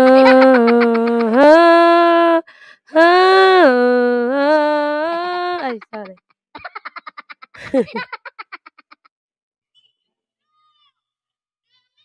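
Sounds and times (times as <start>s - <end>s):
person singing long notes: 0.0s - 6.1s.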